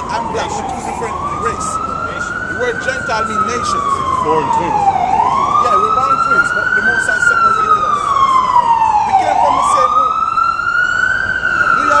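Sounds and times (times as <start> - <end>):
emergency siren wailing: 0.0 - 12.0.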